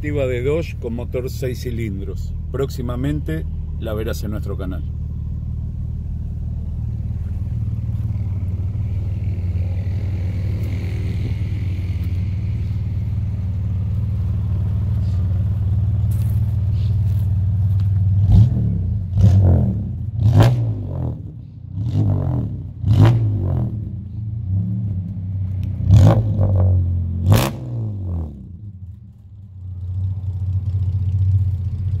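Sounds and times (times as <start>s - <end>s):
car engine idling: 0.0s - 21.9s, 23.6s - 32.0s
engine revving: 3.8s - 28.8s.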